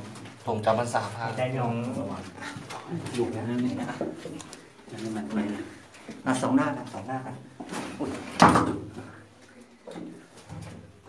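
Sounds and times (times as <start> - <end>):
man speaking in low voice: 0.4 - 7.5.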